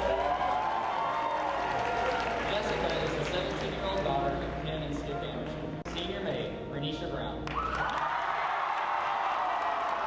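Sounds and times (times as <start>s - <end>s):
crowd cheering and clapping: 0.0s - 5.6s, 7.4s - 10.0s.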